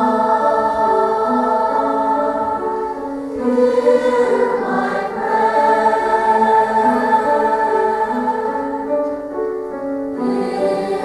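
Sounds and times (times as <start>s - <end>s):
youth choir singing: 0.0s - 9.2s, 10.2s - 11.0s.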